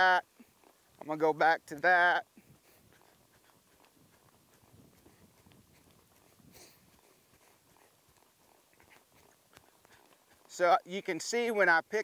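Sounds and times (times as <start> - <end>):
horse hoofbeats on dirt: 0.0 - 12.0.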